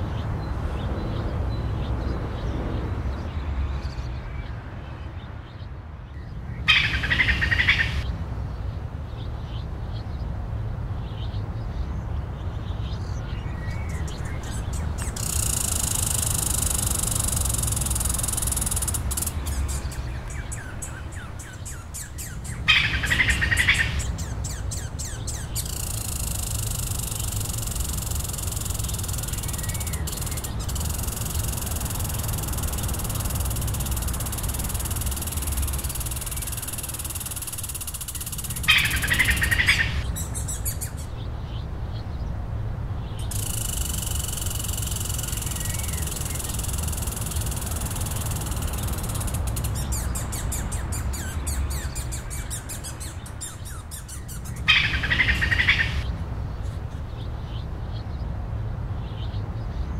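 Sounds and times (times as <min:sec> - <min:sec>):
birds chirping: 0:05.2 - 0:08.1, 0:11.0 - 0:42.4, 0:43.0 - 0:58.3
steady high hiss: 0:15.0 - 0:21.0, 0:25.6 - 0:40.2, 0:43.2 - 0:50.2.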